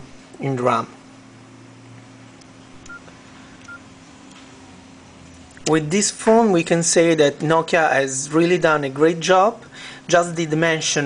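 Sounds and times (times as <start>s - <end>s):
faint steady hum: 0.0s - 11.0s
phone keypad beeps: 2.9s - 3.8s.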